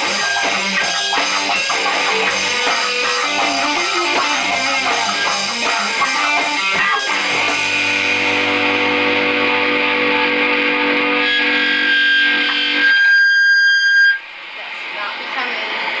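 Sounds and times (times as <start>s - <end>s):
high steady tone: 0.0s - 14.4s
rock band final chord ringing: 0.0s - 14.5s.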